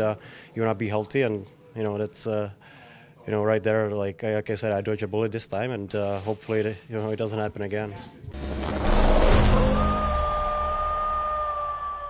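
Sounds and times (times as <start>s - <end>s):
low rumble: 8.3s - 11.2s
logo music long held tone: 8.3s - 11.3s.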